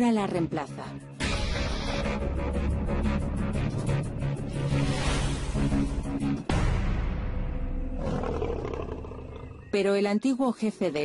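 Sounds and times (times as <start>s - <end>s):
documentary music: 0.0s - 8.6s
lion growling: 8.0s - 9.8s.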